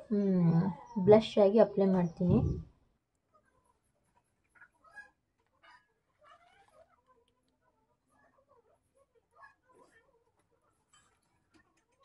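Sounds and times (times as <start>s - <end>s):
woman's voice: 0.0s - 2.6s.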